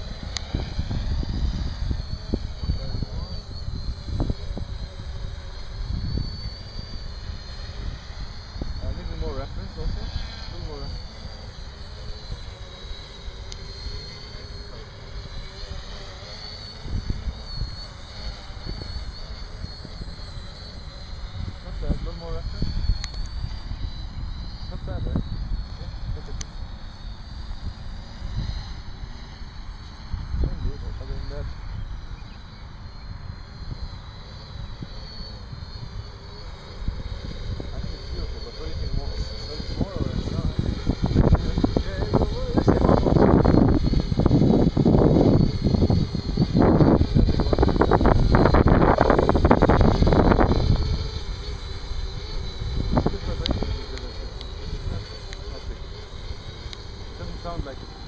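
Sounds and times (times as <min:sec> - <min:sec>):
wind buffeting microphone: 0:00.0 - 0:11.7, 0:16.8 - 0:26.4, 0:30.0 - 0:57.7
drone propellers whining: 0:00.0 - 0:58.0.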